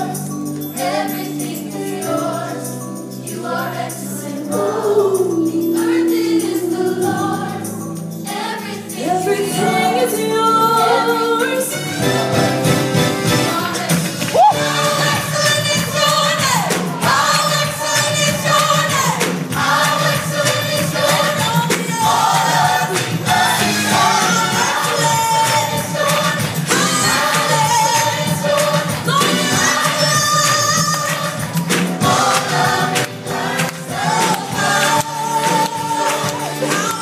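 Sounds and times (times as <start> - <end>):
band and percussion: 0.0 - 37.0
choir singing gospel song: 0.0 - 37.0.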